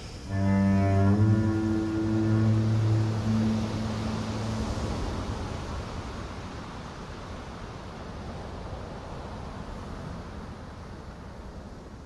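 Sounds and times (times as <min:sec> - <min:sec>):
soft rushing noise: 0:00.0 - 0:06.8
low bowed strings: 0:00.2 - 0:05.6.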